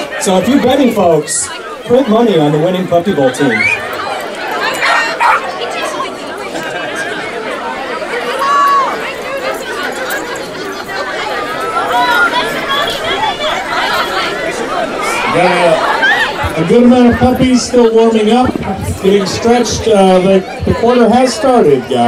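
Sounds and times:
crowd chattering: 0.0s - 22.0s.

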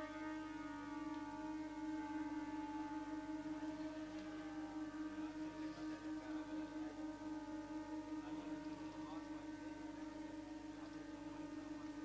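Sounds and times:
conch shells blown: 0.0s - 12.0s.

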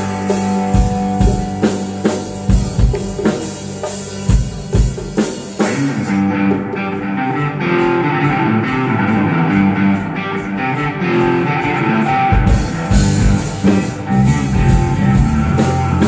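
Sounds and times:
drum kit hits: 0.0s - 6.7s
electric guitars playing riff: 0.0s - 16.0s.

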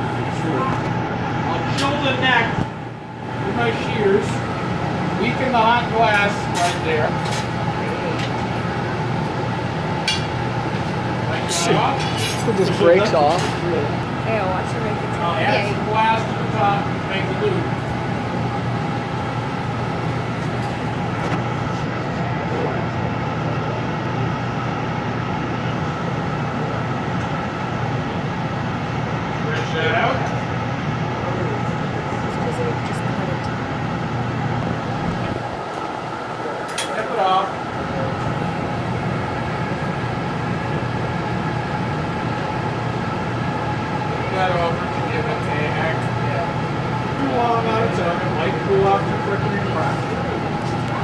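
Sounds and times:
furnace burner drone: 0.0s - 51.0s.

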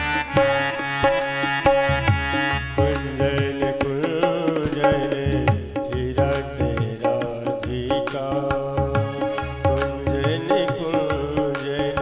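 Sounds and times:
electronic keyboard melody: 0.0s - 6.3s
hand drums rhythm: 0.3s - 12.0s.

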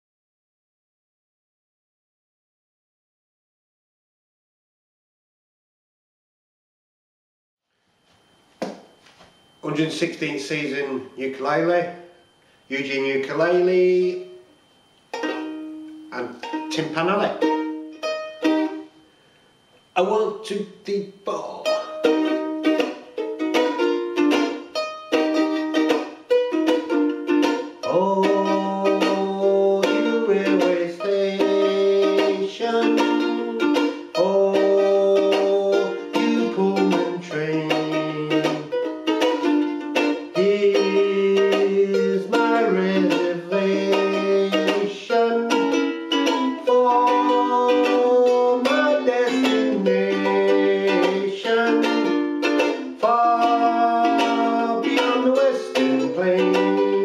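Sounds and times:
man singing: 12.7s - 14.4s, 27.8s - 38.8s, 40.2s - 57.0s
ukulele strumming: 15.1s - 19.0s, 20.9s - 57.0s.

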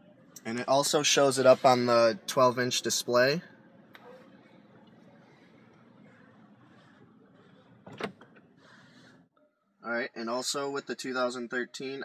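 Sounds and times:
faint car cabin noise: 0.1s - 9.2s.

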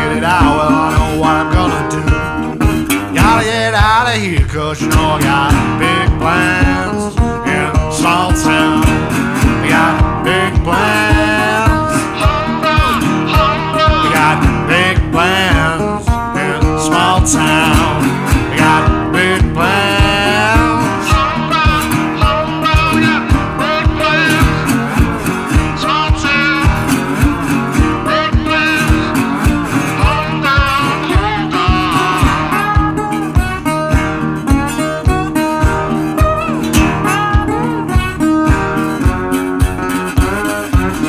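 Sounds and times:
lead guitar bending notes: 0.0s - 41.0s
steady drum beat: 0.0s - 41.0s.

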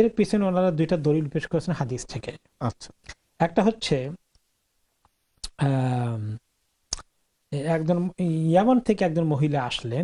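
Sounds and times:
man lecturing: 0.0s - 4.2s, 7.5s - 10.0s
mouth clicks: 6.9s - 7.1s.

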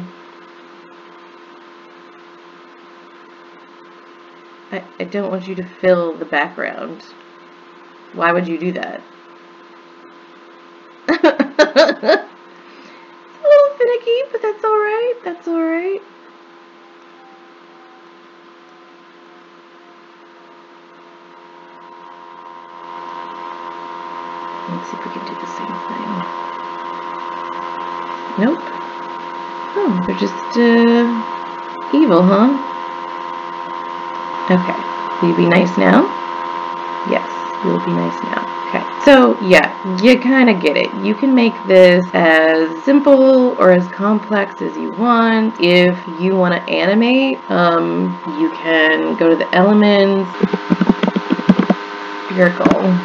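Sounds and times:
constant hiss: 0.0s - 53.0s
electrical hum: 0.0s - 53.0s.

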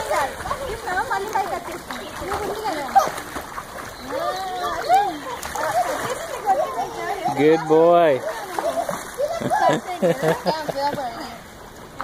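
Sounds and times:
children calling out and chattering: 0.0s - 11.5s
water splashing in a pool: 0.0s - 12.0s.

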